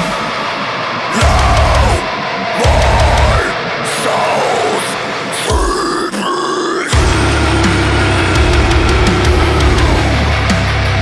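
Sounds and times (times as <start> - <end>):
extreme metal song: 0.0 - 11.0
harsh growled vocals: 1.1 - 11.0.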